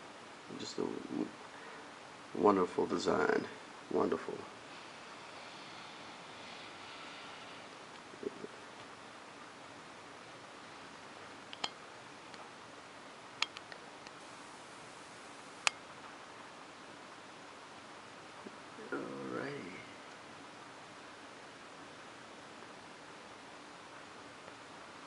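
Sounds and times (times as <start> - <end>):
steady hiss: 0.0 - 25.0.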